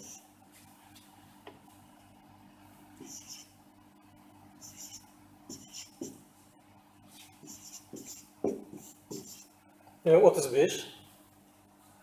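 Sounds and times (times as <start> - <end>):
marker squeaking on whiteboard: 0.0 - 0.2, 3.0 - 3.6, 4.6 - 6.2, 7.2 - 9.5.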